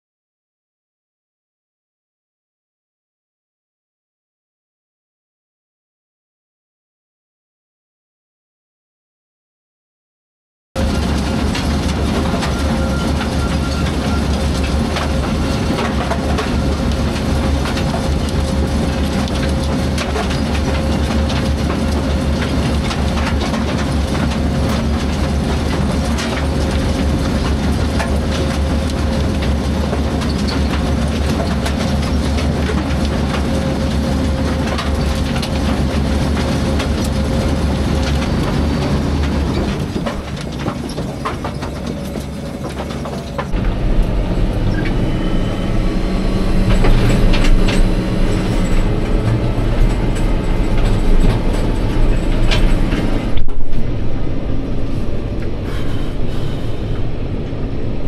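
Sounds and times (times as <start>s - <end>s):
conveyor machinery humming: 10.8s - 58.0s
tractor engine running: 10.8s - 58.0s.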